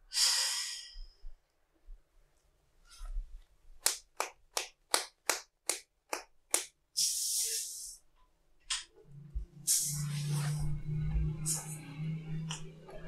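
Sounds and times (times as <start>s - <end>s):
burst of hiss: 7.0s - 8.0s, 9.7s - 10.3s.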